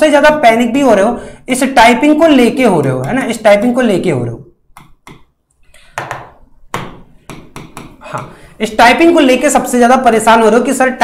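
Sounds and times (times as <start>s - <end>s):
marker tapping on whiteboard: 4.7s - 5.3s, 6.0s - 8.4s.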